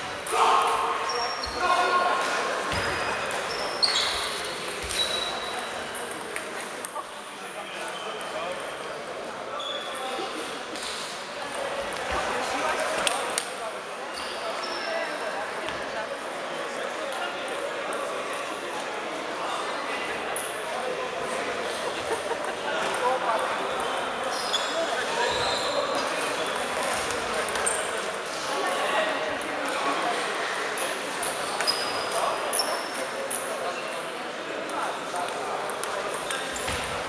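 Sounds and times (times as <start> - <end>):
babble of voices: 0.0 - 37.0.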